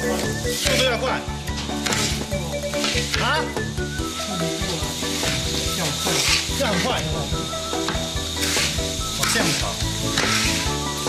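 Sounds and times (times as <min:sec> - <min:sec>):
paddles stirring rice in a wok: 0:00.0 - 0:11.0.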